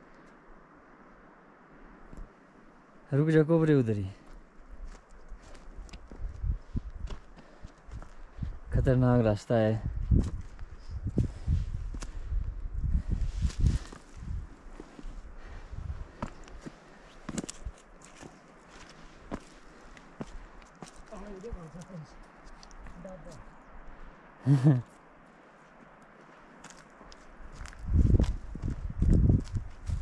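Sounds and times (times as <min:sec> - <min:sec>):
footsteps on rocky trail: 0:04.2 - 0:08.8, 0:10.0 - 0:12.4, 0:13.0 - 0:23.6, 0:25.5 - 0:30.0
low rumble on microphone: 0:27.8 - 0:30.0.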